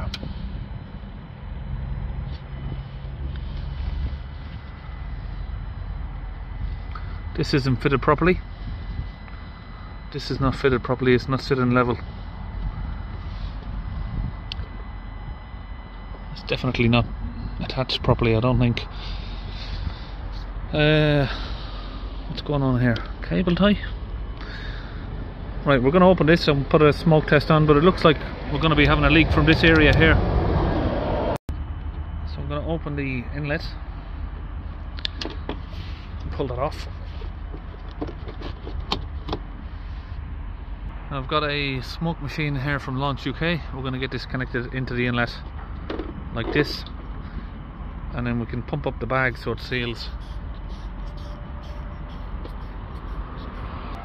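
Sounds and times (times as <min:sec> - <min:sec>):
low background rumble: 0:00.0 - 0:54.0.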